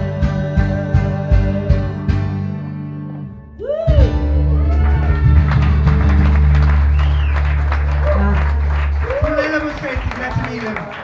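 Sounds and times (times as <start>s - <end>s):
acoustic guitar strumming chords: 0.0s - 6.9s
people clapping: 4.6s - 11.0s.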